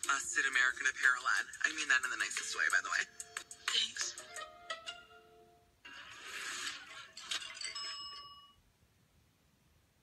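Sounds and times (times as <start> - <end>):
bright chime-like ring: 7.6 - 8.6.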